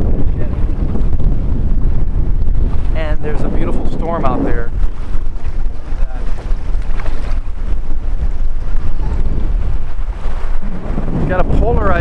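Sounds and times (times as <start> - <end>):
small surf washing: 0.0 - 12.0
wind buffeting microphone: 0.0 - 12.0.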